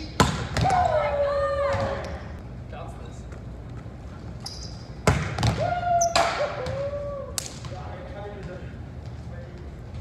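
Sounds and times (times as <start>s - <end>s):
volleyball struck by hands: 0.1s - 1.0s, 5.0s - 7.9s.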